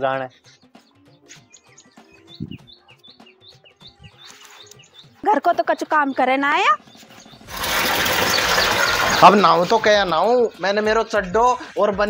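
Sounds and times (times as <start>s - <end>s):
water gushing from hose into tank: 7.5s - 9.9s.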